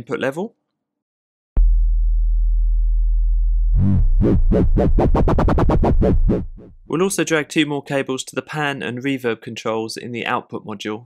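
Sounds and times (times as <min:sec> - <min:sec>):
synthesizer warbling low note: 0:02.4 - 0:06.7.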